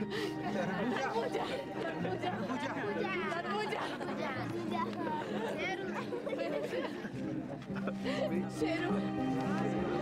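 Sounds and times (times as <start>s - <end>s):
people laughing: 0.0s - 8.6s
crowd chatter: 0.0s - 10.0s.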